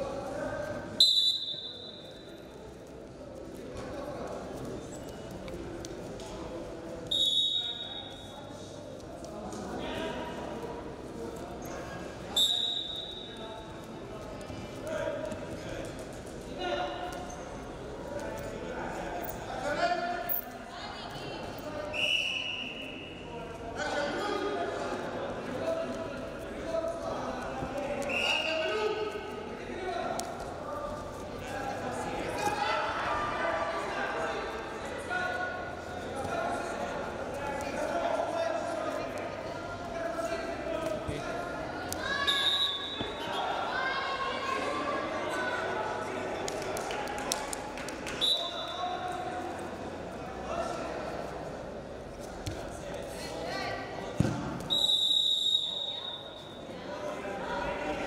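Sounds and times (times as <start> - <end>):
voices calling out in echoing hall: 0.0 - 58.0
high-pitched whistle-like tone: 1.0 - 2.0, 54.7 - 56.5.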